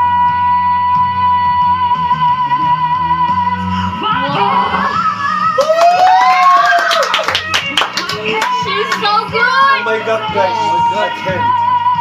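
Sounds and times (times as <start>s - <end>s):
pop ballad backing music: 0.0s - 12.0s
hand claps: 5.6s - 9.1s.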